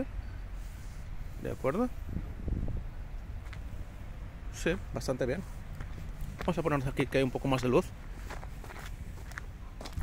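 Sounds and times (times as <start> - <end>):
low outdoor rumble: 0.0 - 10.0
soft footsteps: 3.2 - 3.8, 5.4 - 10.0.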